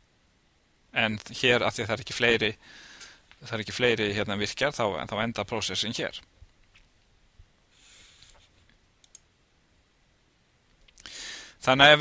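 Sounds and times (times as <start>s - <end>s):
computer mouse click: 9.0s - 9.3s.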